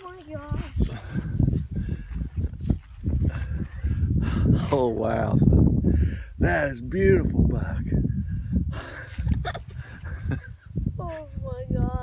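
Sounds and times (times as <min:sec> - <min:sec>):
footsteps on leafy grass: 0:00.0 - 0:04.0.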